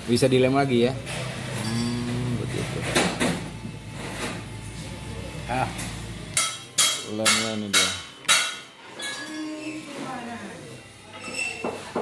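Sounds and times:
steady low hum: 0:01.0 - 0:08.8.

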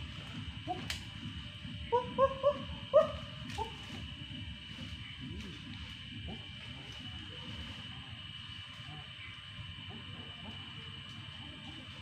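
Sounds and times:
animal hooting calls: 0:01.7 - 0:04.1.

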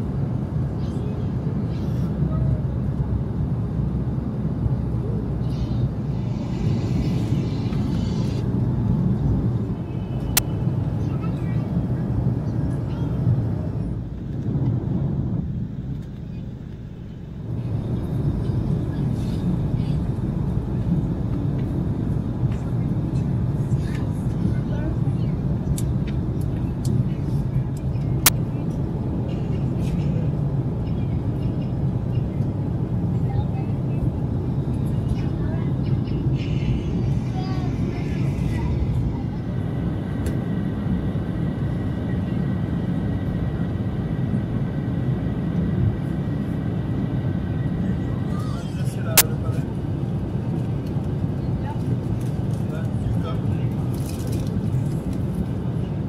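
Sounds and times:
jet engine cabin drone: 0:00.0 - 0:56.0.

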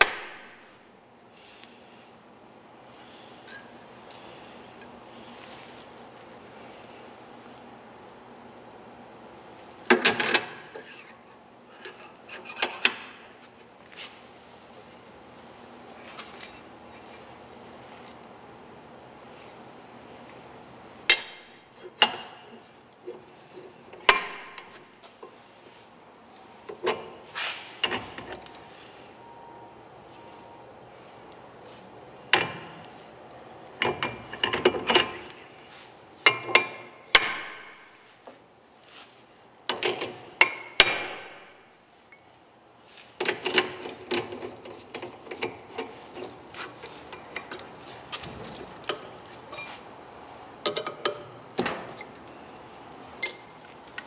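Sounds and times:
metal parts clanking: 0:09.9 - 0:13.4.

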